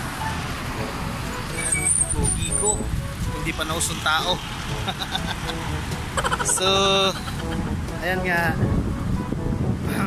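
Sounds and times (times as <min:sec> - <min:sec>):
passing vehicles rumble: 0:00.0 - 0:10.0.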